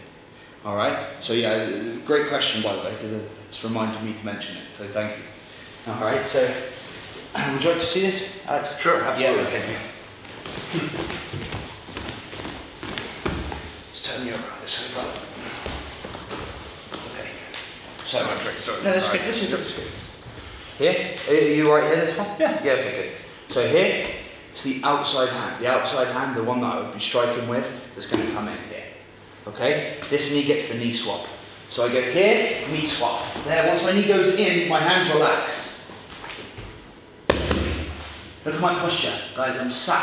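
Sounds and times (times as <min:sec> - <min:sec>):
bodies shuffling on foam mats: 0:09.3 - 0:14.0, 0:14.7 - 0:18.1
bodies thudding on foam mat: 0:10.4 - 0:13.7.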